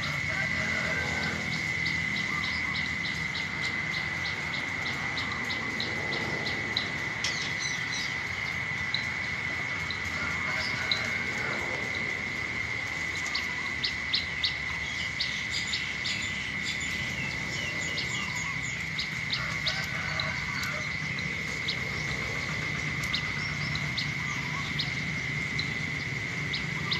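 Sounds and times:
small birds chirping: 0.1s - 26.9s.

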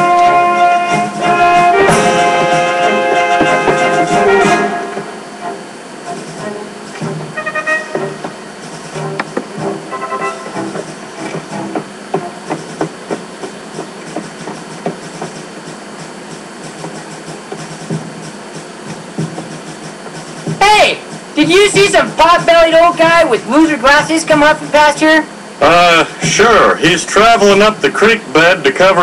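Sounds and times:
brass music cue: 0.0s - 11.8s
short pitched notes: 0.0s - 12.4s.

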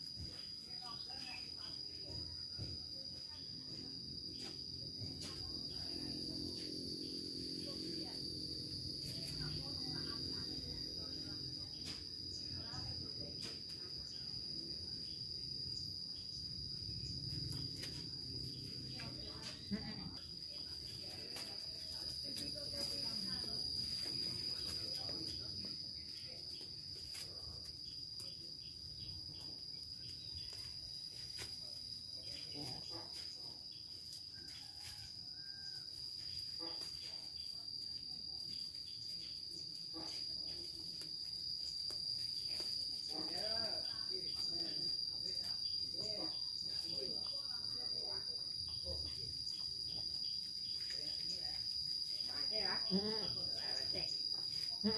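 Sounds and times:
insects droning: 0.0s - 54.9s.

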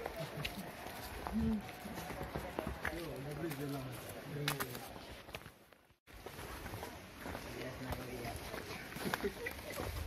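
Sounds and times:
footsteps on a stony path: 0.0s - 10.0s.

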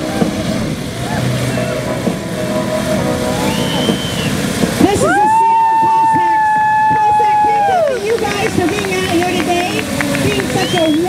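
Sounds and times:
loud steady high tone: 0.0s - 7.7s
motorcycles riding: 0.0s - 11.0s.

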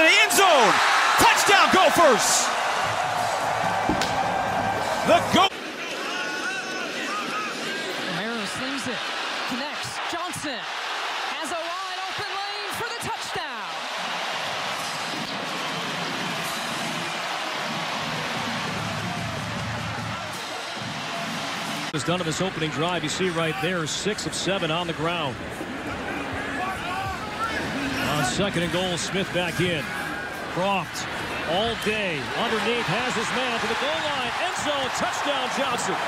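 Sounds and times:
stadium crowd cheering and shouting: 0.0s - 36.0s
music: 15.4s - 22.0s.

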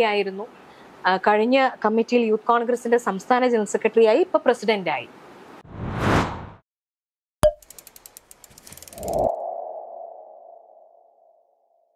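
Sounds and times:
quick ticks: 7.5s - 9.3s.

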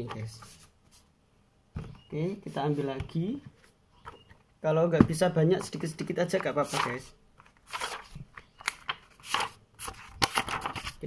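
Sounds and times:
paper sheets rustling: 6.3s - 11.0s.

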